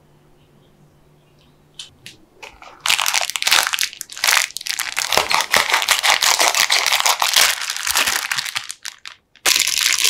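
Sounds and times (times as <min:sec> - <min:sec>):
plastic bag crinkling: 0:02.6 - 0:10.0.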